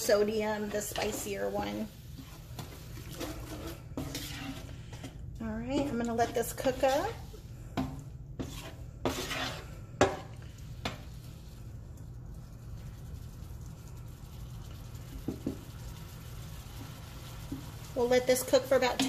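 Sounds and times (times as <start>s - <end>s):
spatula scraping meat in skillet: 0.0s - 11.6s
steady low hum: 0.0s - 19.0s.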